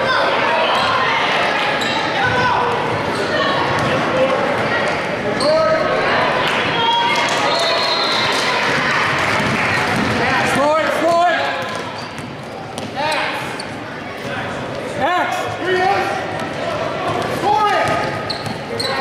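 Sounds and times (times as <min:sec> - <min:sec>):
crowd noise: 0:00.0 - 0:19.0
basketball bouncing on court: 0:03.7 - 0:04.0, 0:08.7 - 0:10.2, 0:11.6 - 0:13.0, 0:16.3 - 0:18.8.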